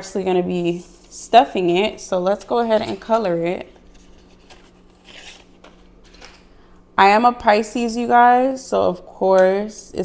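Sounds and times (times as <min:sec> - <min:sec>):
faint steady hum: 0:00.0 - 0:10.0
paper rustle: 0:03.8 - 0:06.4.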